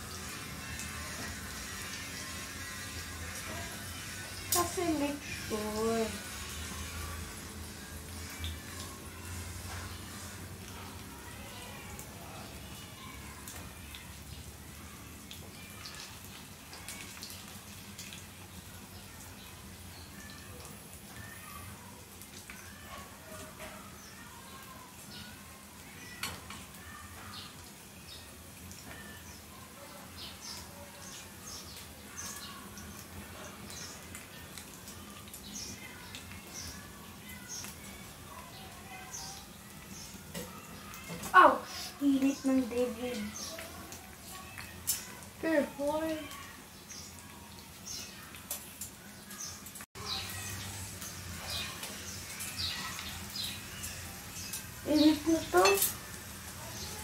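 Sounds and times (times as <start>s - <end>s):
dumplings sizzling in oil: 0.0s - 57.0s.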